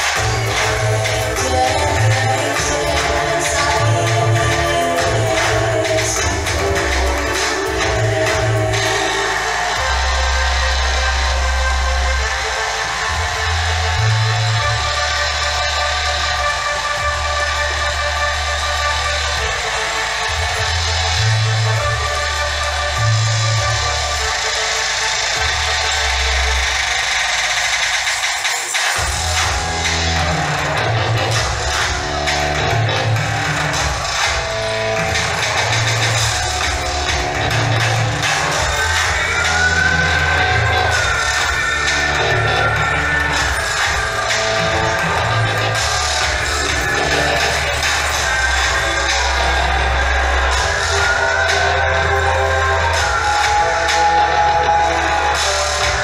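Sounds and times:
music with heavy bass line: 0.0 - 56.0.

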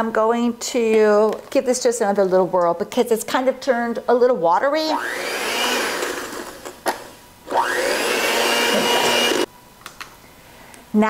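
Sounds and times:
electric mixer whipping egg whites: 4.9 - 6.6, 7.5 - 9.5.

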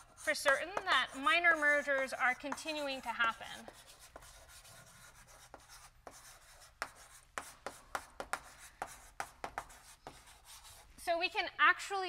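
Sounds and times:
chalk tapping and scratching: 0.0 - 11.0.

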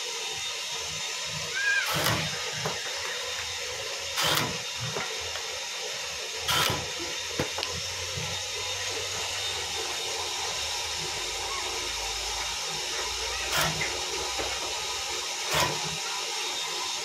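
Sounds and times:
cutting machine humming: 0.0 - 17.0
sharp cutting strokes: 1.0 - 5.2, 6.4 - 11.4, 12.1 - 14.4, 15.4 - 16.2.

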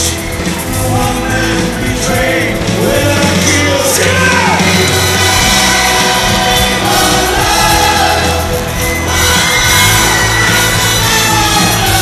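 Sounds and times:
orchestra and rock band playing: 0.0 - 12.0
voices singing: 0.0 - 12.0.

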